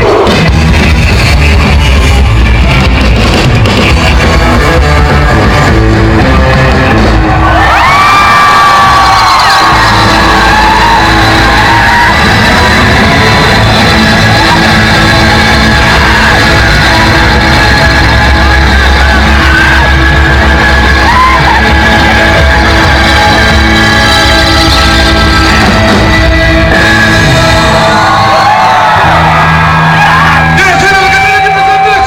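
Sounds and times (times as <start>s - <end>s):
audience yelling: 0.0s - 32.0s
loud surf rock band: 0.0s - 32.0s.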